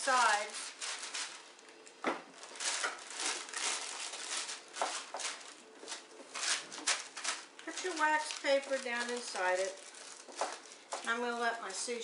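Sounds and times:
wax paper crinkling: 0.0 - 12.0.

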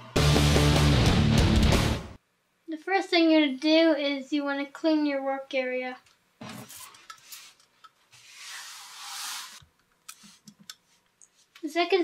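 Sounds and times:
paper towel wiping board: 6.6 - 9.6.

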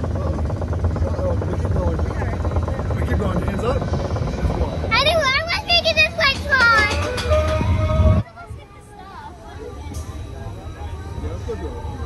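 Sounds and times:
roller coaster rumbling on track: 0.0 - 12.0
riders screaming and whooping: 6.7 - 8.2.

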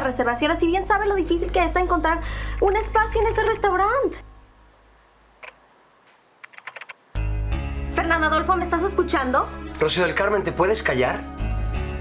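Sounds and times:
keyboard keystrokes: 6.4 - 7.0.

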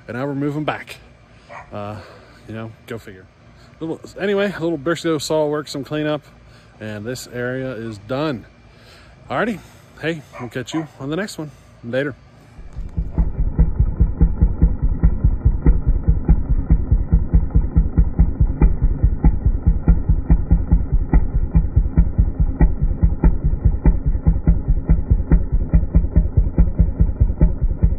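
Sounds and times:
small engine idling: 12.6 - 27.9.

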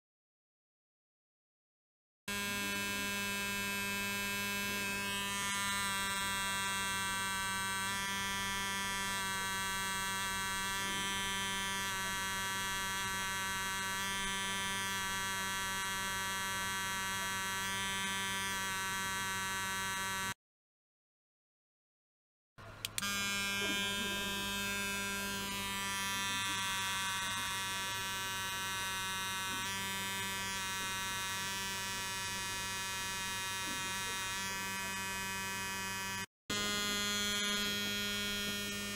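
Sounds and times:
electric toothbrush buzzing: 2.3 - 20.4, 22.8 - 38.9.

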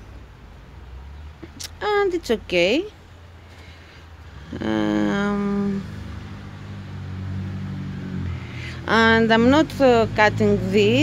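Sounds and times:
woman speaking: 1.4 - 3.0, 4.4 - 5.9, 8.6 - 11.0.

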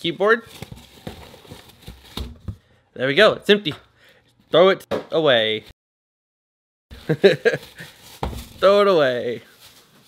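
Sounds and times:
cardboard and plastic rustling: 0.2 - 2.7, 6.9 - 10.0.

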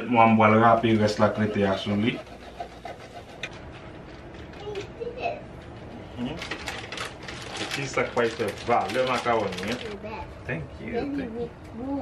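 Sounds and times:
cheese scraped on a grater: 1.0 - 3.5.

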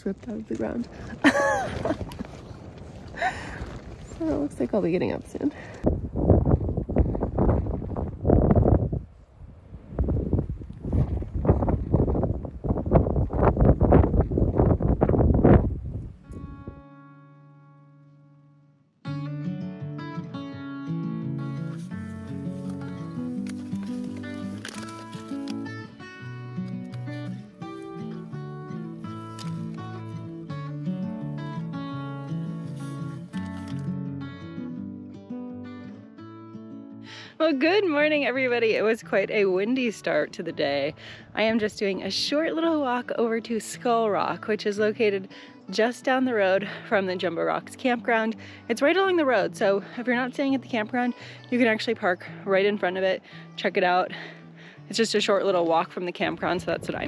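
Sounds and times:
wind gusting against tent: 0.6 - 16.8
acoustic guitar music: 16.0 - 57.0.

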